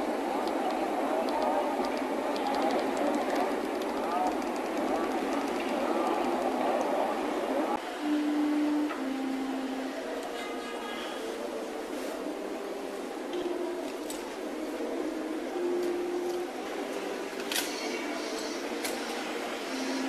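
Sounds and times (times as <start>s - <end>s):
murmur of voices: 0.0s - 20.0s.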